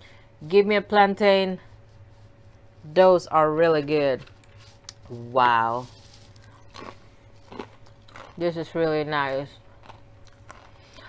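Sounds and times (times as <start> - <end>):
tortilla chip crunching: 6.0 - 8.5, 9.2 - 11.0.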